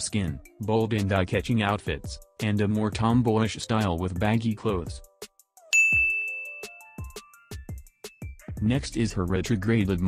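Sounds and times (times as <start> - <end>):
soft background music with beat: 0.0 - 10.0
bright high chime: 5.7 - 7.4.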